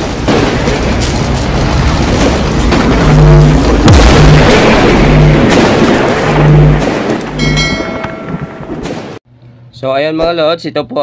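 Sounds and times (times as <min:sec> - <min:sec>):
pulsing low tones: 0:02.5 - 0:08.8
loud noisy swell: 0:02.7 - 0:07.6
bright ringing chime: 0:07.4 - 0:08.6.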